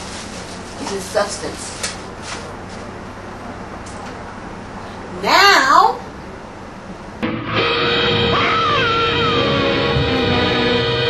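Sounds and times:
plastic rustling: 0:00.0 - 0:02.9
low background hum: 0:00.0 - 0:07.2.

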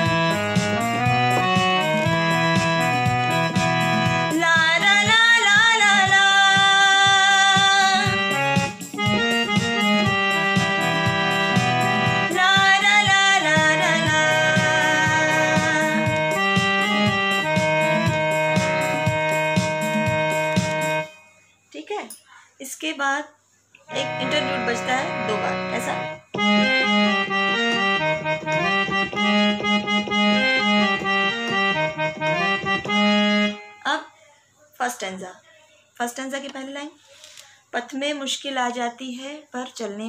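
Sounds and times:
person singing: 0:00.0 - 0:21.2
keyboard accompaniment: 0:00.0 - 0:21.5, 0:23.8 - 0:34.0.

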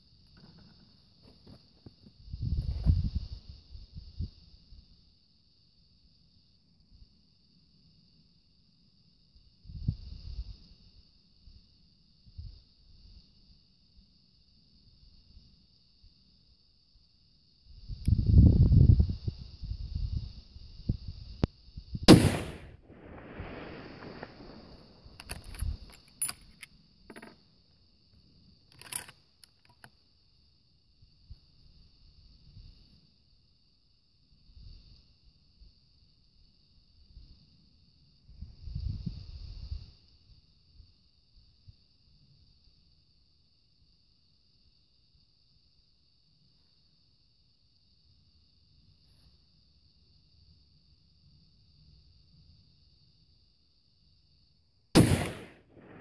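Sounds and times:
low rumble of wind: 0:02.0 - 0:06.1, 0:06.8 - 0:15.9, 0:17.4 - 0:27.2, 0:34.3 - 0:42.4, 0:55.0 - 0:56.0
rifle shot echoing off hills: 0:22.1 - 0:25.1, 0:55.0 - 0:56.0
small sharp clicks: 0:28.7 - 0:30.0.

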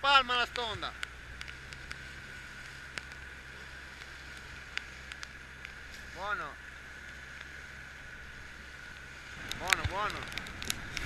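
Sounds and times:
motorboat engine humming: 0:00.0 - 0:11.0
water noise: 0:00.0 - 0:11.0
wind: 0:00.0 - 0:11.0
faint ticks: 0:00.5 - 0:03.3, 0:03.9 - 0:06.0, 0:06.7 - 0:07.7, 0:08.8 - 0:11.0.

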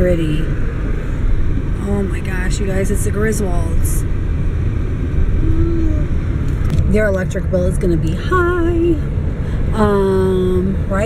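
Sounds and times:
car cabin rumble: 0:00.0 - 0:11.0.

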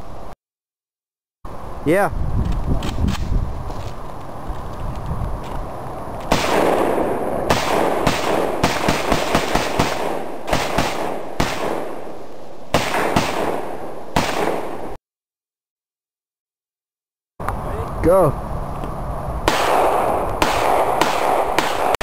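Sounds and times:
rifle shots with rolling echo: 0:06.3 - 0:15.0, 0:19.4 - 0:22.0.

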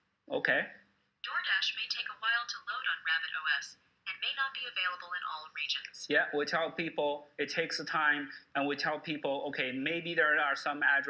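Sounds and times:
synthesized voice through small speaker: 0:01.3 - 0:06.3.

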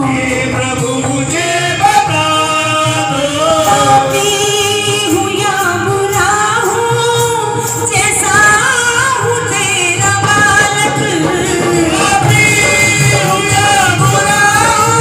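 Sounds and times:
woman singing into a microphone: 0:02.8 - 0:15.0.

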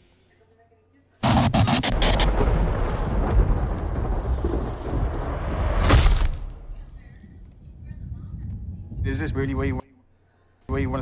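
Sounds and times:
crackling static haze: 0:01.2 - 0:05.6
deep low rumble: 0:01.9 - 0:09.2.

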